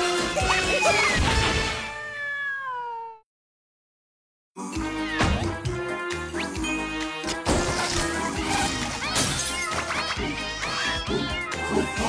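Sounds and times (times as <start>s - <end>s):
upbeat cartoon music: 0.0s - 2.0s, 4.6s - 12.0s
cat meowing: 1.8s - 3.2s.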